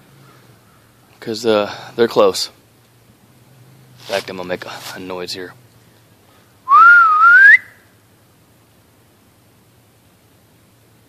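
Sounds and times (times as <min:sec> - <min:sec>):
person whistling a call: 0:06.7 - 0:07.8.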